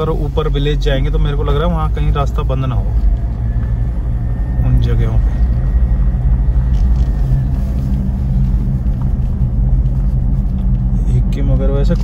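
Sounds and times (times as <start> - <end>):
engine and tyre rumble in cabin: 0.0 - 12.0.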